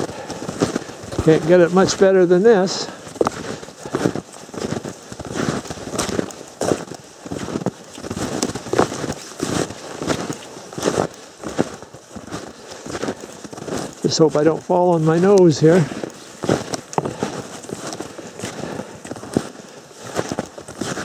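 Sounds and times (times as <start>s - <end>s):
snowshoe footsteps crunching snow: 0.0s - 21.0s.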